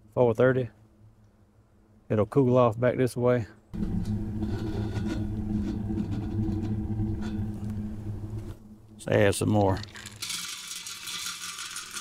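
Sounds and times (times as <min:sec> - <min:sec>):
pellets rattling into metal hopper: 0:09.8 - 0:12.0.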